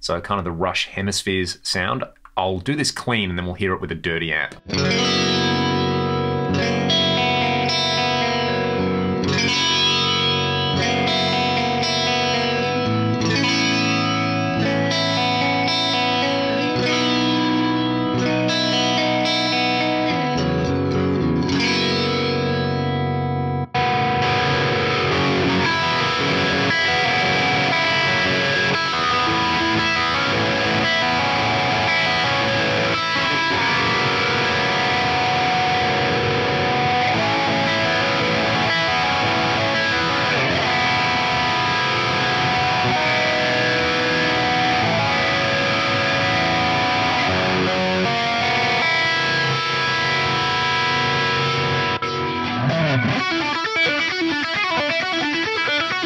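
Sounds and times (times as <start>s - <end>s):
distorted electric guitar: 4.0s - 56.0s
flanged clean electric guitar chords: 4.6s - 56.0s.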